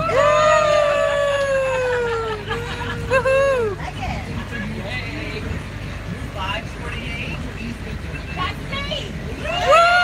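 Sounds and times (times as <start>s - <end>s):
bus engine and road noise: 0.0s - 10.0s
passenger chatter: 0.0s - 10.0s.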